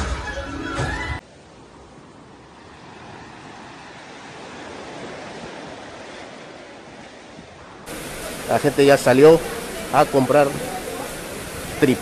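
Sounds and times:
wind: 0.0s - 12.0s
sea surf: 0.9s - 12.0s.

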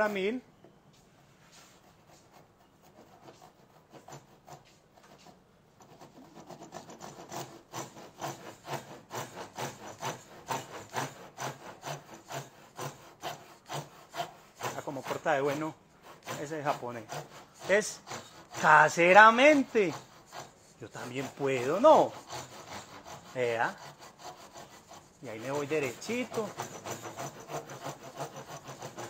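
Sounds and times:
hand saw cutting wood: 1.7s - 29.0s.

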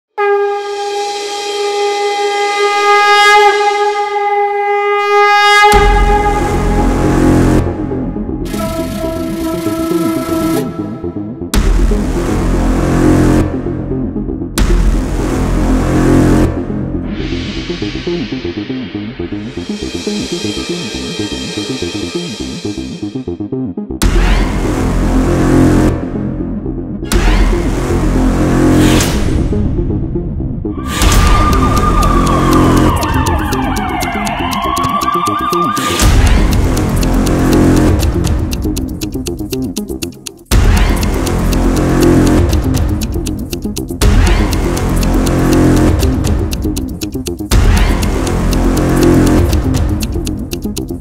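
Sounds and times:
conch shell blown: 0.1s - 7.6s
background music: 5.2s - 51.0s
deep booming music hit: 5.8s - 9.0s, 14.5s - 19.3s, 27.1s - 33.0s, 36.0s - 38.6s.

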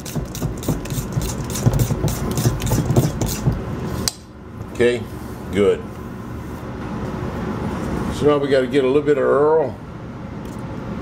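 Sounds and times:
spoon whipping batter in metal bowl: 0.0s - 3.6s.

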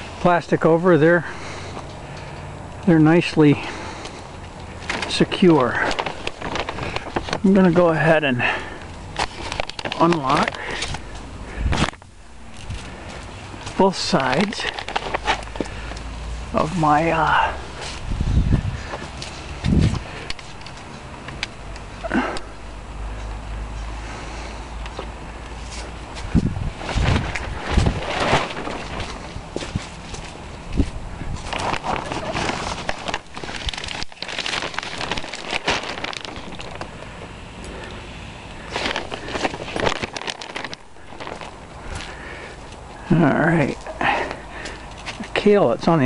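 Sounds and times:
footsteps on garden ground: 0.0s - 22.5s, 23.2s - 46.0s
plastic sheeting rustling: 4.6s - 21.0s, 25.6s - 46.0s.

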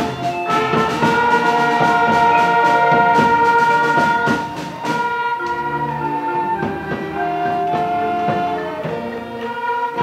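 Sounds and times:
orchestra brass chord: 0.0s - 10.0s
percussion strokes: 0.0s - 10.0s.

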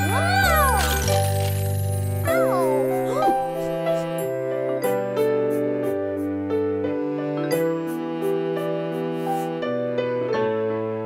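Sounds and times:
child wailing: 0.0s - 1.2s, 2.2s - 3.8s.

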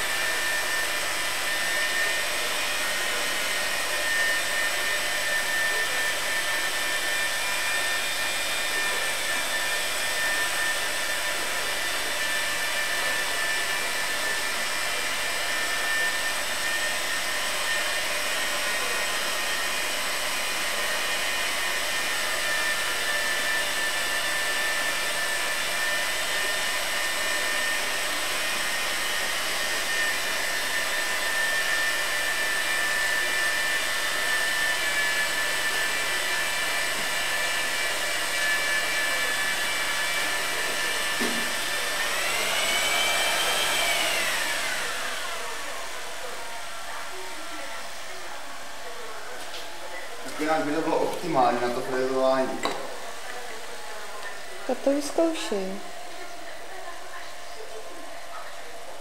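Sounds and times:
high-speed grinder whining: 0.0s - 58.9s.

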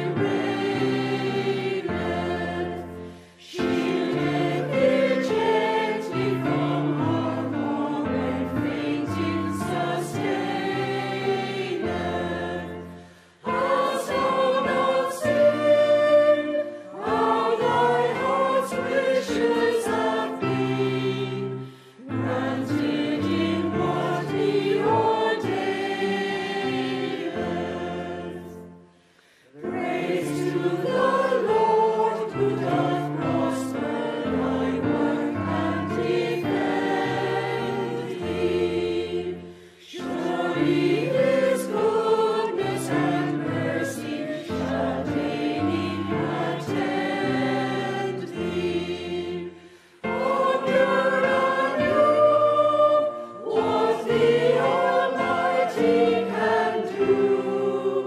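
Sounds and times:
mixed choir singing a hymn: 0.0s - 58.0s.

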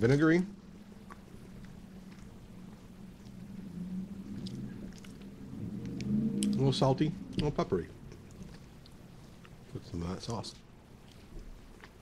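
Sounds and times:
chewing fries: 0.0s - 12.0s
steady low hum: 0.0s - 12.0s.

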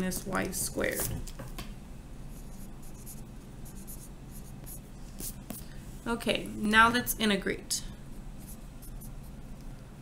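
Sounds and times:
pen writing on paper: 2.3s - 5.6s.

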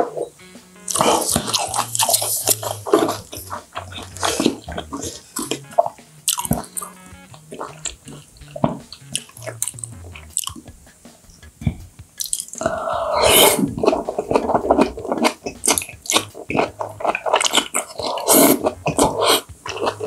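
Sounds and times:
chewing: 12.2s - 20.0s
small wet food sounds: 12.2s - 20.0s.

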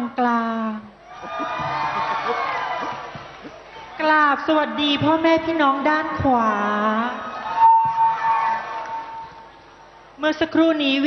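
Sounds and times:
woman's voice through microphone: 0.0s - 1.0s, 3.9s - 7.3s, 10.2s - 11.0s.

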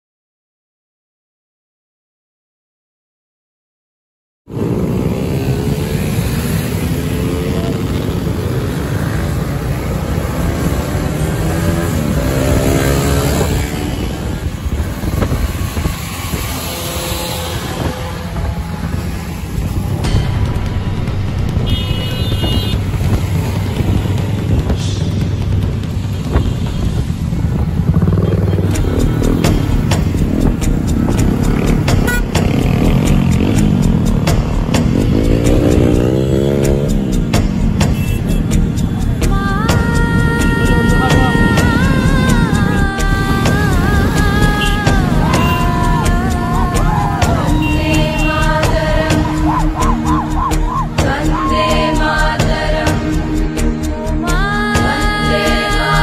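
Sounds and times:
motorcycle engines revving: 4.5s - 56.0s
music with steady beat: 18.0s - 56.0s.

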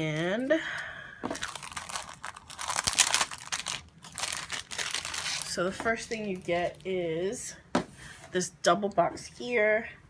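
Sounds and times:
cellophane sleeve crinkling: 1.3s - 6.9s.

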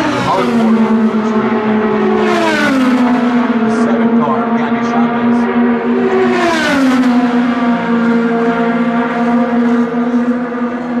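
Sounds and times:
race car engines droning: 0.0s - 11.0s
race car passing by: 0.0s - 11.0s.

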